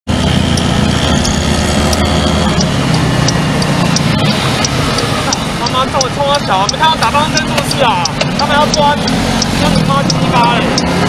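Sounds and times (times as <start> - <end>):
scooter engine accelerating: 0.1 - 11.0
turn signal ticking: 0.1 - 11.0
wind and road noise: 0.1 - 11.0.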